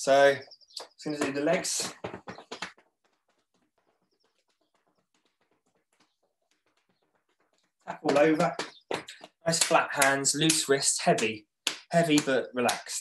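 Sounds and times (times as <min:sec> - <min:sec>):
hands slapping legs through trousers: 0:04.4 - 0:13.0.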